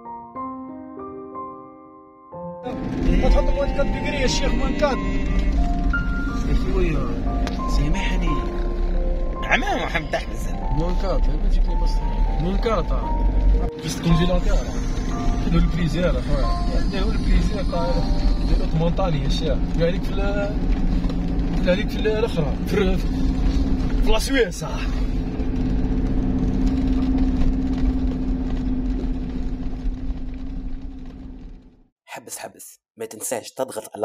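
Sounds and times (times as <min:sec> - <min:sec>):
car engine rumble: 0:02.6 - 0:31.9
people talking: 0:02.7 - 0:05.0, 0:06.5 - 0:08.4, 0:09.4 - 0:13.1, 0:13.8 - 0:14.8, 0:15.4 - 0:20.5, 0:21.6 - 0:23.0, 0:24.0 - 0:25.0, 0:32.1 - 0:34.0
road noise inside car: 0:02.7 - 0:31.8.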